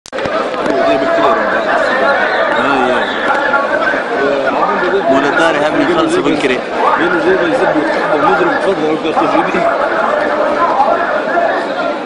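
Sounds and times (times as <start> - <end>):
overlapping voices: 0.1 - 12.0.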